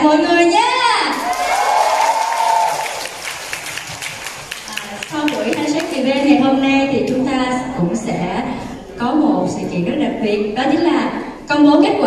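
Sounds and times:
crowd applause: 0:01.1 - 0:06.0.

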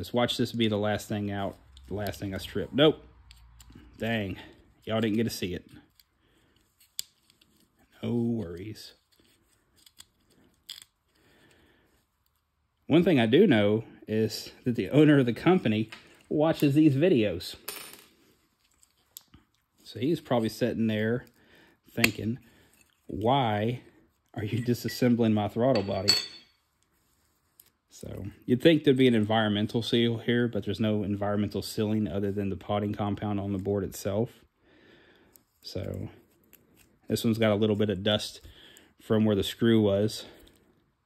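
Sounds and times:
light metallic clink: 0:25.8 - 0:26.6.

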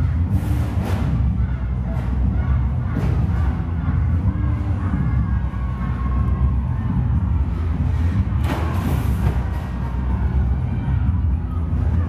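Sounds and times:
loud arena music with heavy bass: 0:00.0 - 0:12.0.

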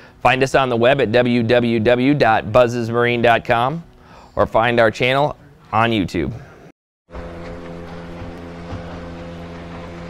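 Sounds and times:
boat engine drone: 0:07.1 - 0:10.0.

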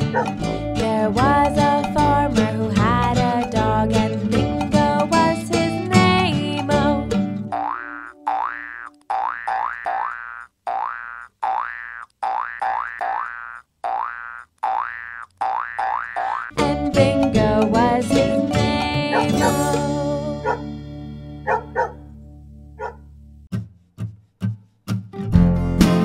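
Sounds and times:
backing music: 0:00.0 - 0:07.6, 0:16.5 - 0:22.6
cartoon boing effects: 0:07.5 - 0:16.5.

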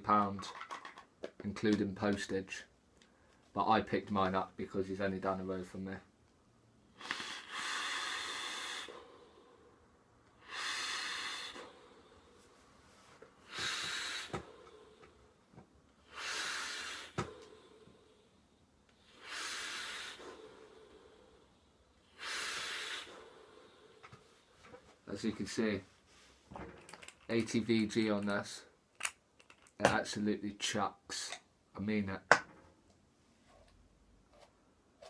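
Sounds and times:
hissing vape breaths: 0:07.0 - 0:09.8, 0:10.4 - 0:12.6, 0:13.4 - 0:15.3, 0:16.0 - 0:24.5.

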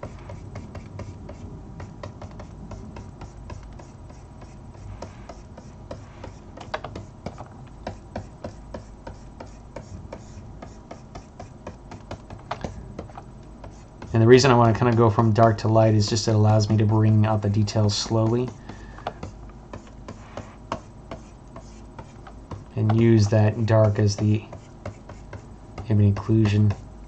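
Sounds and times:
hands rubbing on desk: 0:00.0 - 0:15.6, 0:19.2 - 0:25.5
low steady hum: 0:00.0 - 0:27.0.

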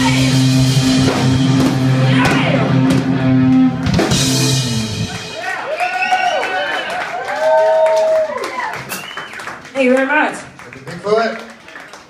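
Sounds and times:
electric guitars: 0:00.0 - 0:05.4
drum and cymbal hits: 0:00.0 - 0:05.6
bass guitar: 0:00.0 - 0:06.1.

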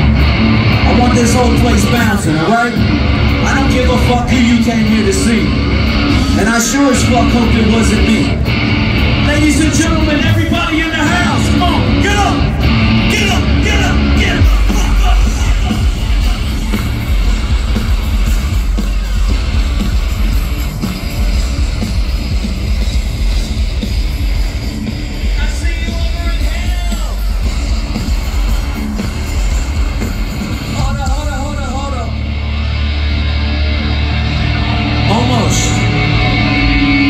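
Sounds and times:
heavy bass: 0:00.0 - 0:37.0
metal band playing loudly: 0:00.0 - 0:37.0
shouted vocals: 0:10.2 - 0:16.8.

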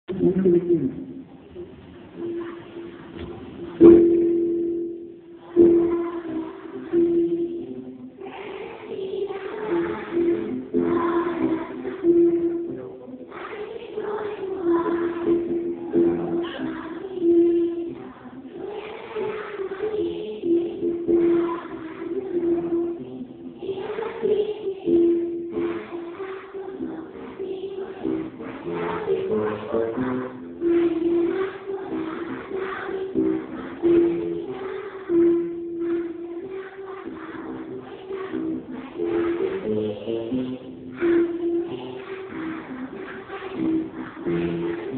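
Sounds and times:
children singing in unison: 0:02.2 - 0:44.9.

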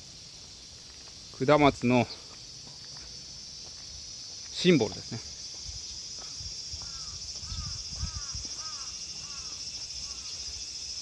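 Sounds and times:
crickets chirping: 0:00.0 - 0:11.0
footsteps on pavement: 0:00.4 - 0:10.8.

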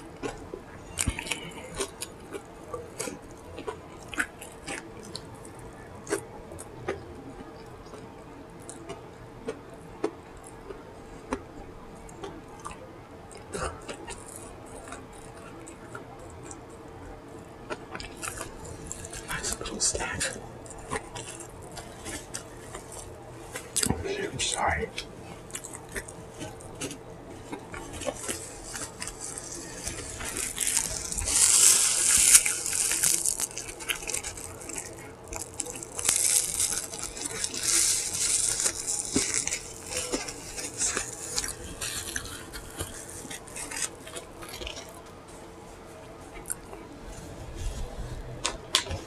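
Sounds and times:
paper napkin rustling and crumpling: 0:18.1 - 0:24.7, 0:25.4 - 0:45.0.

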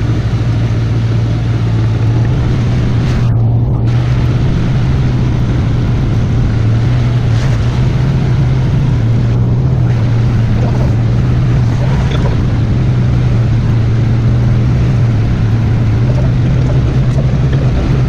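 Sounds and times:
rushing wind and tyres: 0:00.0 - 0:18.0
vehicle engine running: 0:00.0 - 0:18.0.

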